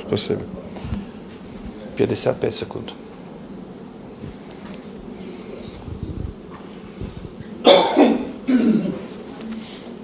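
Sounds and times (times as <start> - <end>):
faint room noise: 0.0 - 10.0
person coughing: 7.6 - 9.0.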